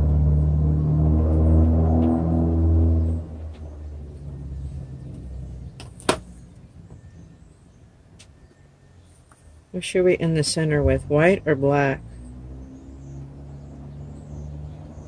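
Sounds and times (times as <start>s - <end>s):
motor vehicle engine drone: 0.0s - 15.0s.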